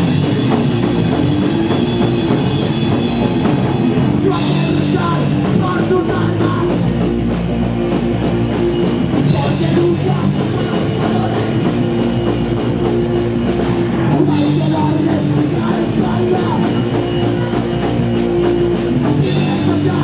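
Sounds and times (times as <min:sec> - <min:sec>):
distorted electric guitars: 0:00.0 - 0:20.0
drum kit: 0:00.0 - 0:20.0.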